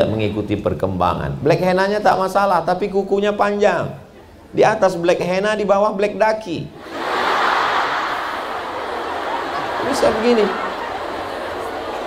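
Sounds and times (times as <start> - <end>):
audience of women laughing: 6.8 - 12.0.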